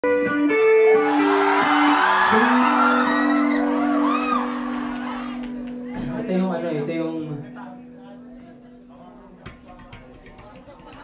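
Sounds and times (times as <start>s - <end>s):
audience whooping and cheering: 0.9s - 6.1s.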